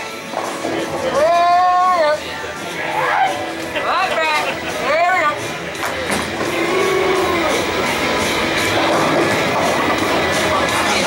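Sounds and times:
bowling ball rolling down lane: 0:05.8 - 0:10.6.

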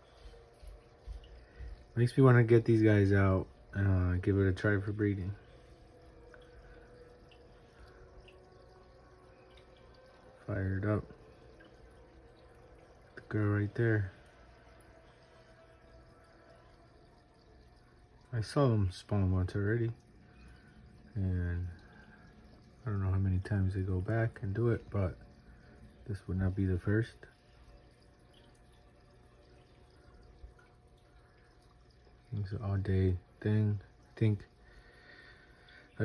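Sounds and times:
aquarium filter bubbling: 0:00.0 - 0:36.0
low steady hum: 0:00.0 - 0:36.0.

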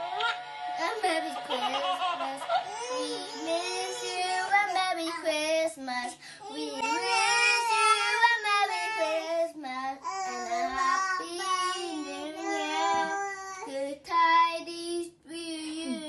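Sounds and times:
girl singing into toy microphone: 0:00.8 - 0:16.0.

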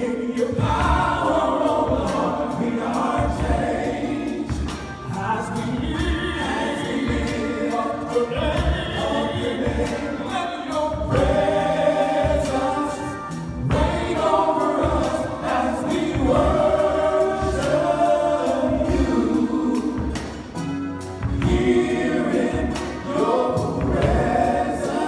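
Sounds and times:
bass: 0:00.0 - 0:25.0
male vocal group singing: 0:00.0 - 0:25.0
drum beat: 0:00.4 - 0:25.0.

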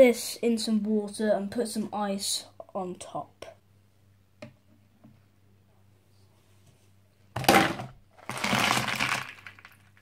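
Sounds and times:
ice cubes clattering into water: 0:07.4 - 0:10.0.

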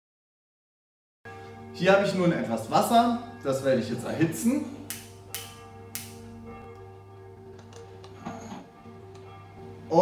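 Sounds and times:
soft background music: 0:01.3 - 0:10.0.

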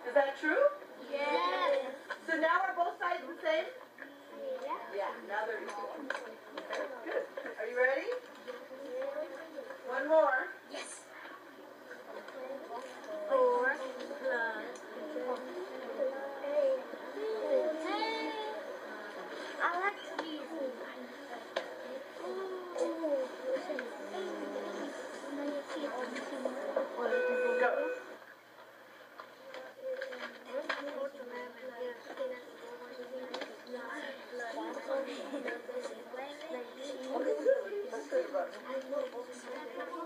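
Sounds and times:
indistinct voices talking: 0:12.0 - 0:28.2
brief steady tone: 0:27.0 - 0:28.2.

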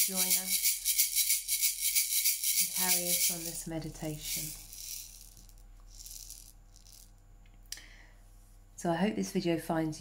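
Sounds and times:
hand rattle shaking: 0:00.0 - 0:07.1.

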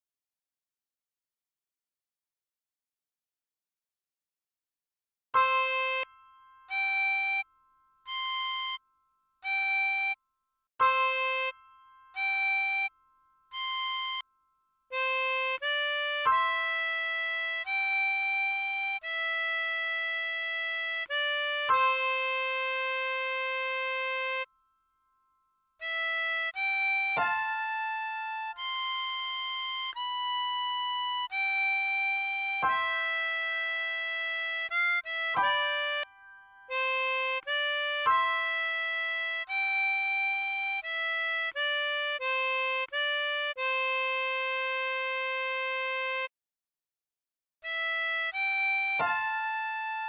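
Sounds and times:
harmonica steady blow note: 0:05.4 - 0:08.8, 0:09.4 - 0:10.2, 0:10.8 - 0:14.3, 0:14.9 - 0:24.5, 0:25.8 - 0:46.3, 0:47.6 - 0:50.0.

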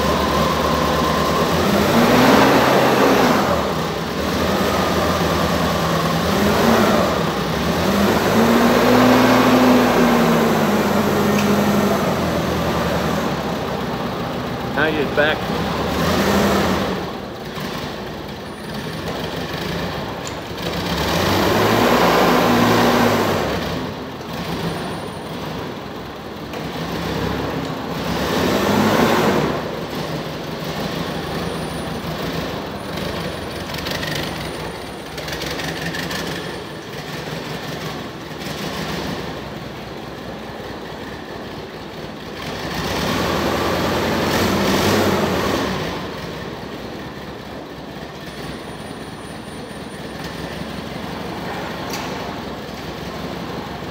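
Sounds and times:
forklift engine running: 0:00.0 - 0:53.9.

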